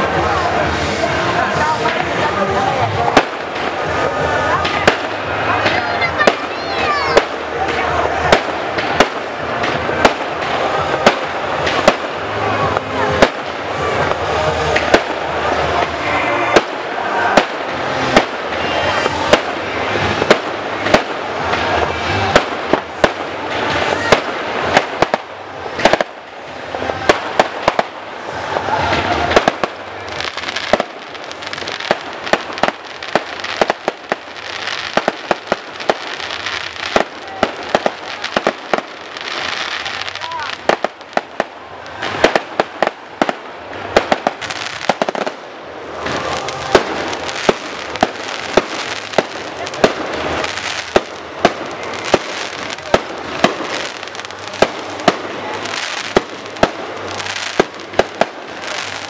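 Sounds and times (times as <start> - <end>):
fireworks bursting: 0.0 - 59.0.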